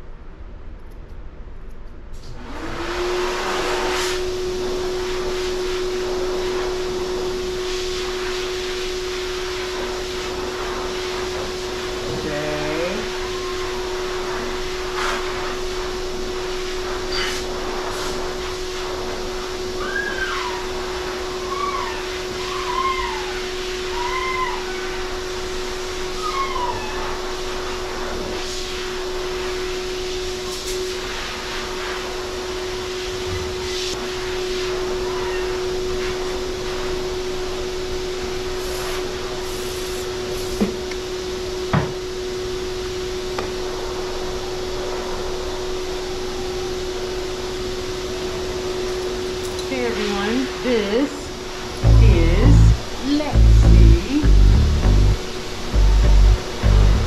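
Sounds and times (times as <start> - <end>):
dog whining: 19.8 - 25.1, 26.1 - 27.2, 34.9 - 35.7
electric blower motor humming: 51.8 - 57.0.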